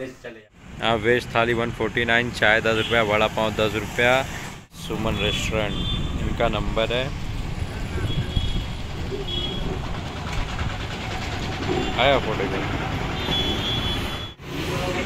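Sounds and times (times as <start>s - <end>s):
road traffic rumble: 0.5s - 15.0s.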